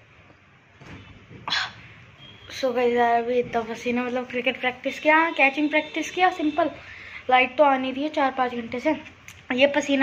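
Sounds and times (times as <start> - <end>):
person breathing through mouth: 6.8 - 7.2.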